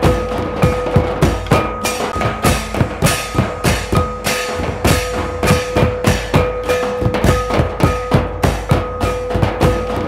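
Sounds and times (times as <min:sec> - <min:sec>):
drum-led folk dance music: 0:00.0 - 0:10.0.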